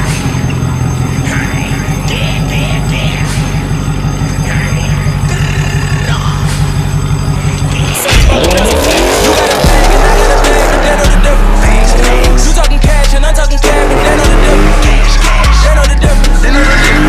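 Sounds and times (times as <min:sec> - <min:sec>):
car engine revving: 0:00.0 - 0:17.0
hip-hop backing track: 0:00.0 - 0:17.0.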